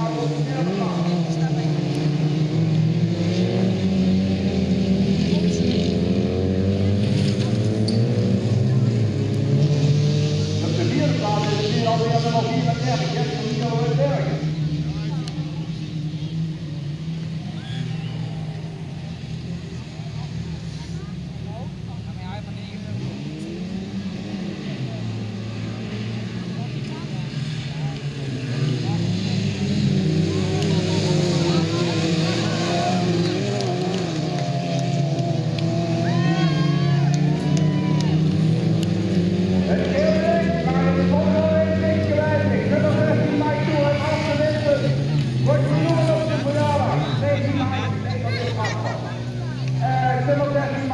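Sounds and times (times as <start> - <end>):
race car engines revving: 0.0 - 50.9.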